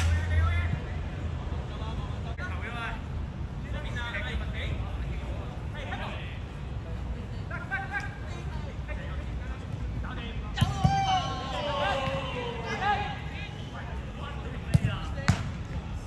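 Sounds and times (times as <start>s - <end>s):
players shouting: 10.5s - 13.9s
football kicked with thuds: 14.7s - 15.6s.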